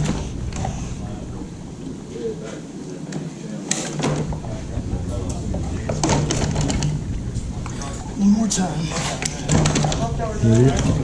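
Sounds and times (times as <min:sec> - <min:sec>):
people talking in background: 0:00.6 - 0:11.0.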